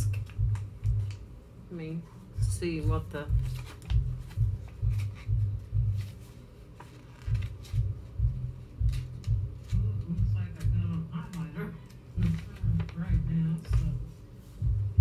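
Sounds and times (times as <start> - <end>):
low pulsing music: 0.0 - 15.0
paper card rustling and clicking: 3.4 - 5.4, 6.0 - 8.1, 8.7 - 14.0.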